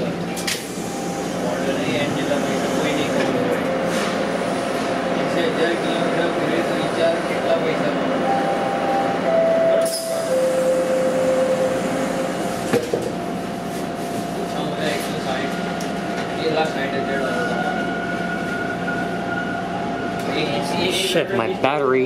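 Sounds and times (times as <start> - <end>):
subway car running in tunnel: 0.0 - 22.0.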